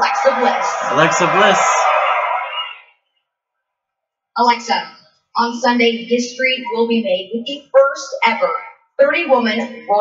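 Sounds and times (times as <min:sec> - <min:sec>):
crowd cheering: 0:00.0 - 0:02.9.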